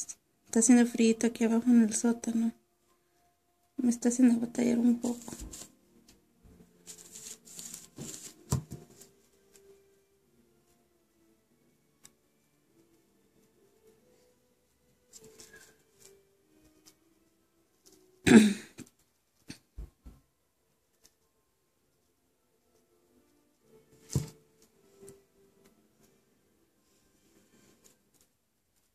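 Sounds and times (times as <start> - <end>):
soft handling rustling: 4.8 - 9.9, 13.4 - 18.2.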